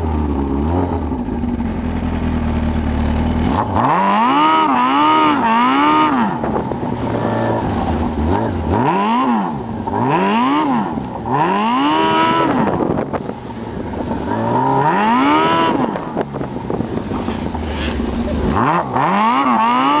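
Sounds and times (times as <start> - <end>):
snowmobile engine revving: 0.0 - 20.0.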